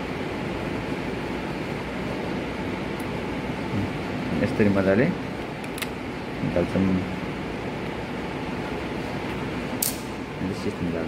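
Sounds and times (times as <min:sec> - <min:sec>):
fan hum: 0:00.0 - 0:11.0
sharp metallic snap: 0:09.8 - 0:10.2.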